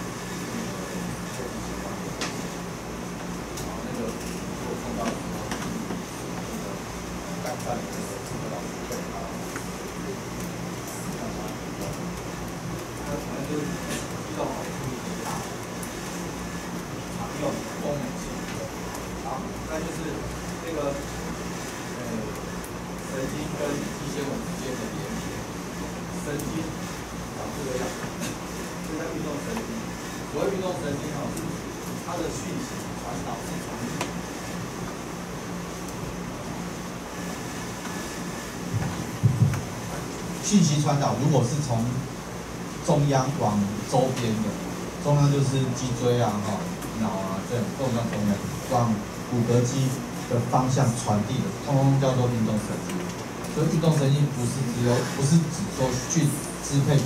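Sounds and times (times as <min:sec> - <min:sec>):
low background hum: 0:00.0 - 0:57.0.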